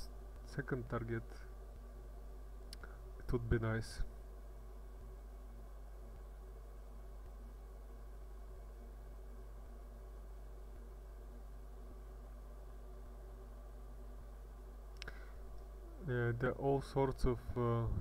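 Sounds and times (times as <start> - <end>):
faint low hum: 0.0 - 18.0.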